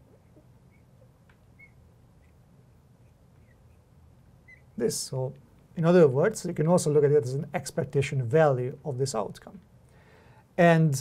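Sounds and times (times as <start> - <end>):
low room hum: 0.0 - 11.0
marker squeaking on glass: 0.6 - 4.8.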